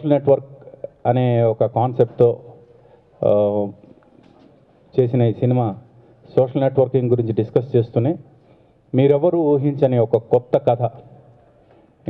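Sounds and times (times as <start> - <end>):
man speaking into a microphone: 0.0 - 3.9, 4.9 - 11.3.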